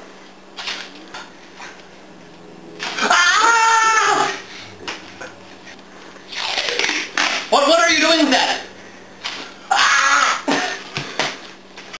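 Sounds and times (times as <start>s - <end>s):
young man crying out and grunting: 3.0s - 4.5s, 9.7s - 10.8s.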